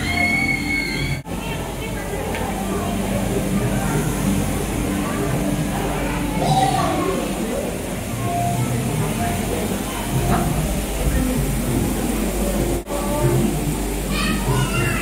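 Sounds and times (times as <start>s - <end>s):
children's voices: 0.0s - 15.0s
crowd chatter echoing: 0.0s - 15.0s.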